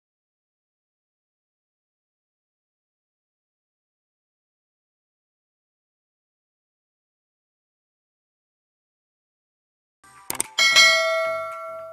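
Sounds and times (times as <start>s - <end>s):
mouse click sound effects: 10.3s - 10.6s
notification bell ding: 10.6s - 11.9s.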